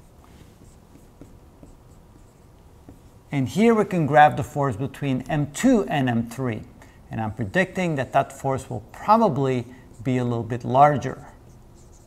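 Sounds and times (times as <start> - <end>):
marker drawing on whiteboard: 0.0 - 6.4, 7.2 - 12.0.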